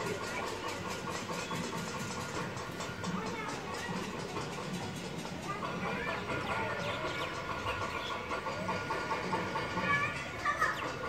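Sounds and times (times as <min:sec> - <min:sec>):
birds calling: 0:00.0 - 0:11.0
murmur of distant voices: 0:00.0 - 0:11.0.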